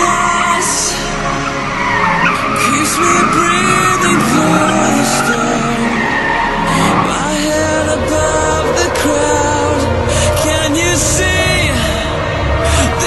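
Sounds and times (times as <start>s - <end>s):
car engine revving: 0.0s - 13.0s
tyres squealing: 0.3s - 10.8s.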